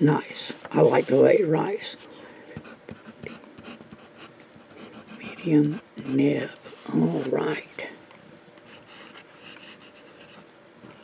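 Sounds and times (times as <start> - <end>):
fountain pen scratching on paper: 2.6 - 6.4, 8.7 - 11.0.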